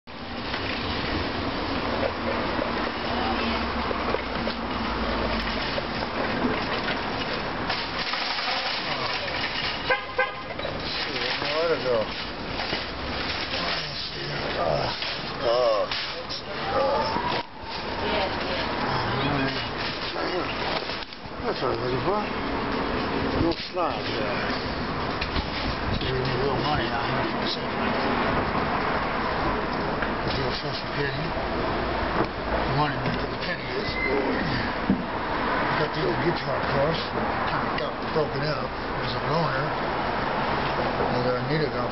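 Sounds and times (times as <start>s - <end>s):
indistinct voices outdoors: 0.0s - 41.9s
urban traffic rumble: 0.0s - 41.9s
car horn toot: 9.8s - 10.7s.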